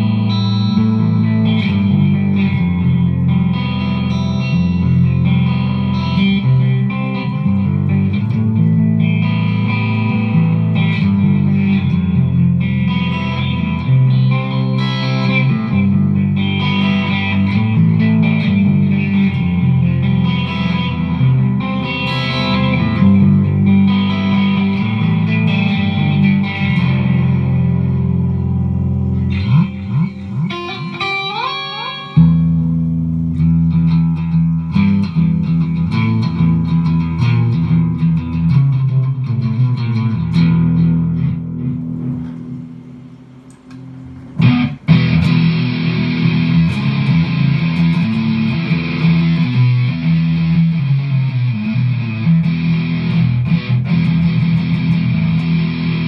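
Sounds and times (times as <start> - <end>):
electric guitar with effects: 0.0 - 56.0.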